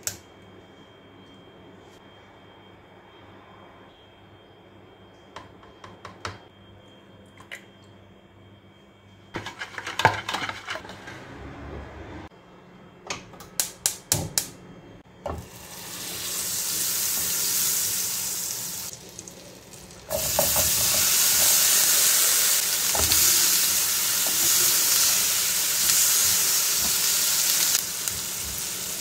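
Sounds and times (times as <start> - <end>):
butter sizzling in frying pan: 15.4 - 29.0
tomato frying in butter: 15.4 - 29.0.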